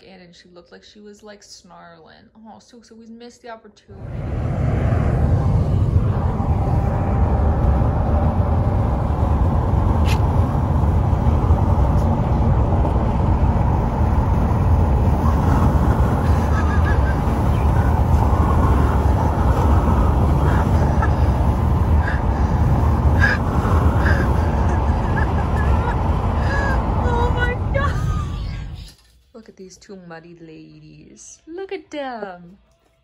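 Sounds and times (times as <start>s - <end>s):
wind buffeting through car window: 3.9s - 28.8s
tyre and road noise: 3.9s - 29.0s.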